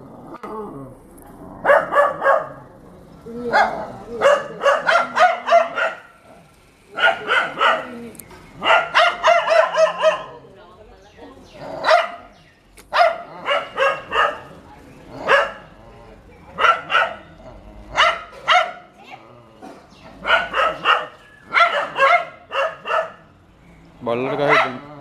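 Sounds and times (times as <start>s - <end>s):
dog barking sharply: 1.7s - 2.6s, 3.6s - 6.1s, 7.0s - 7.9s, 8.6s - 10.3s, 12.9s - 14.5s, 20.2s - 23.2s, 24.3s - 24.8s.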